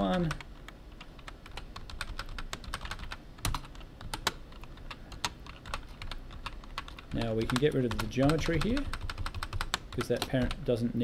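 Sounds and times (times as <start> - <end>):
computer keyboard typing: 0.0 - 10.8.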